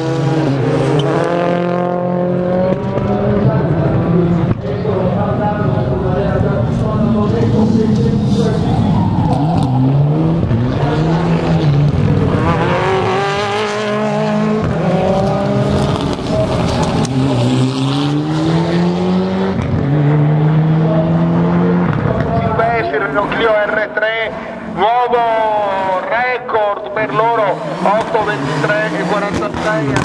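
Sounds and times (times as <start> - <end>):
car engine revving through gears: 0.0 - 5.1, 6.3 - 23.2, 27.0 - 30.0.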